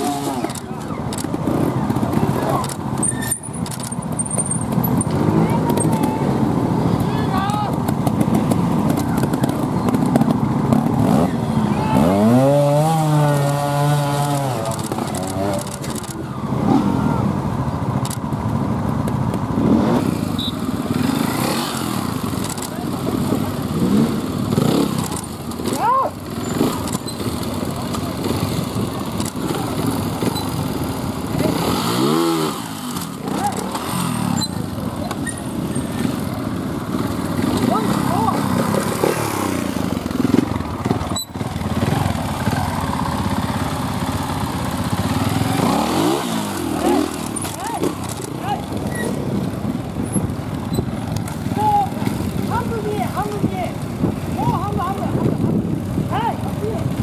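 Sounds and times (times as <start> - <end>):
voices: 0.0 - 18.1, 20.3 - 57.0
motorcycle engines revving: 0.0 - 57.0.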